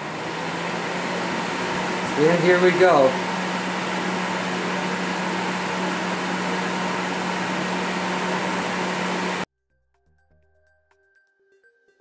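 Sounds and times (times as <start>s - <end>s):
electric heater fan humming: 0.0s - 9.5s.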